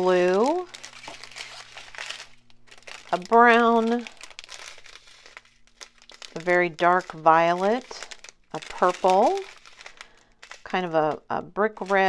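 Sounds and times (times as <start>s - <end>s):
plastic packets crinkling: 0.0s - 12.0s.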